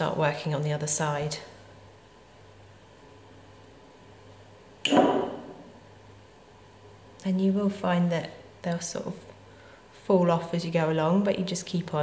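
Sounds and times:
sharp knock with ringing tail: 0:04.9 - 0:05.6.

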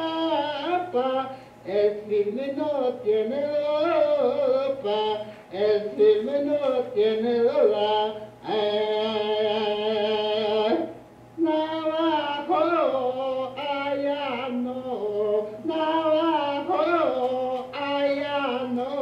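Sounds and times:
low loudspeaker hum: 0:00.0 - 0:19.0
man singing unaccompanied: 0:00.0 - 0:19.0.

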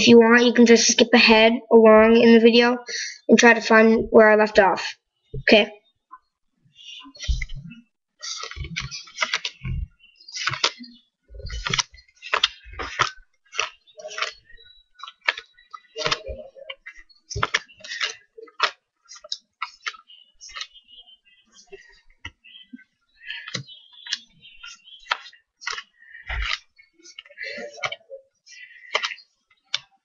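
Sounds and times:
cards clicking and snapping: 0:08.2 - 0:09.7, 0:10.4 - 0:10.8, 0:11.5 - 0:20.7, 0:23.3 - 0:28.0, 0:28.8 - 0:29.9
playing cards laid on wooden table: 0:08.4 - 0:09.7, 0:25.0 - 0:28.0.

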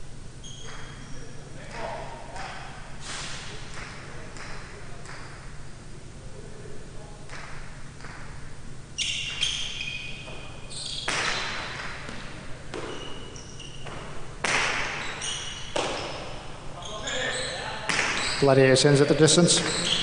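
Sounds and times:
ball cracking against walls: 0:10.3 - 0:13.2, 0:13.8 - 0:16.4, 0:17.9 - 0:18.3
high-pitched squeaks: 0:16.8 - 0:18.6, 0:19.5 - 0:20.0.

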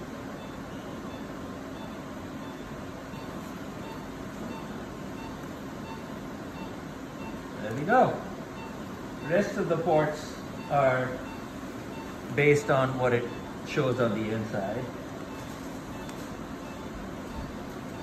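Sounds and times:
equipment hum: 0:00.0 - 0:18.0.

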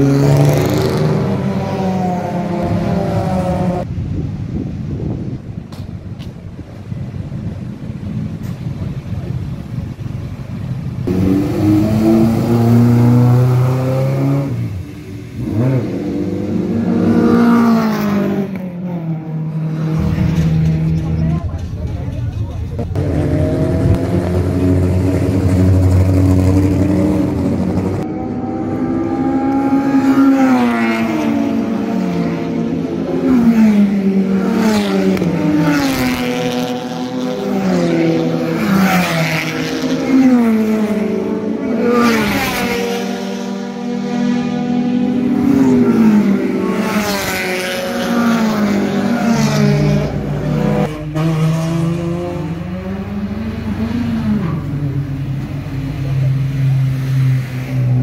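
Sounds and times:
race car engines revving and idling: 0:00.0 - 0:58.0
race car accelerating through gears: 0:22.8 - 0:58.0.

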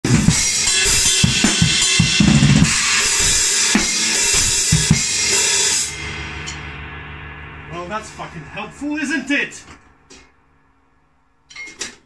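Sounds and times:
bass drum: 0:00.0 - 0:09.0
cymbals: 0:00.1 - 0:11.5.

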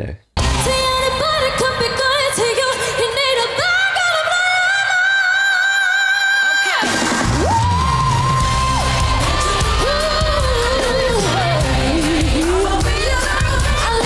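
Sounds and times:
backing music: 0:00.4 - 0:02.5, 0:06.8 - 0:14.0
heavy bass and beat: 0:07.1 - 0:14.0.

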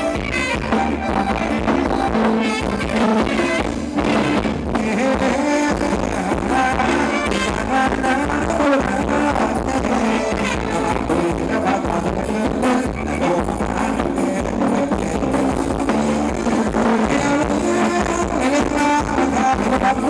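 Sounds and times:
live band dance music: 0:00.0 - 0:20.0
person singing: 0:00.0 - 0:20.0.

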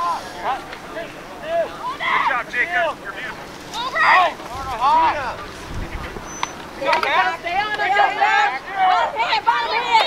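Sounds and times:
distant shouting: 0:00.0 - 0:10.0
wind rumbling on microphone: 0:04.4 - 0:06.8.

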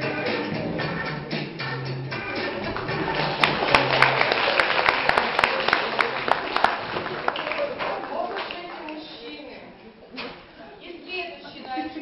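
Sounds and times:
music track: 0:00.0 - 0:05.1
crowd voices: 0:02.1 - 0:12.0
audience applause: 0:02.6 - 0:09.0.

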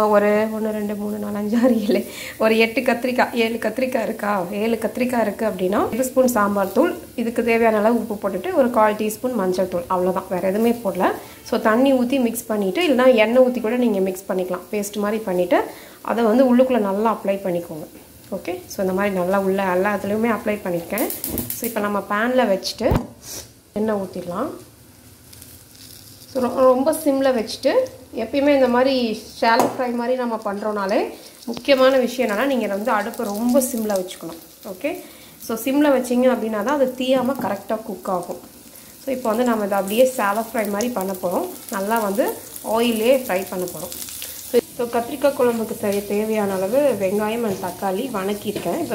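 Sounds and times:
woman speaking: 0:00.0 - 0:23.1, 0:23.8 - 0:24.6, 0:26.4 - 0:38.4, 0:39.1 - 0:43.9, 0:44.6 - 0:48.9
food sizzling in oil: 0:00.0 - 0:48.9.

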